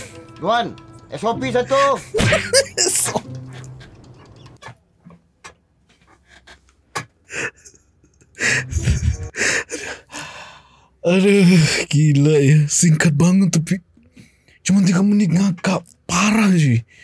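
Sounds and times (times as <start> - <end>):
man laughing hard: 1.7 - 4.5, 8.5 - 9.3.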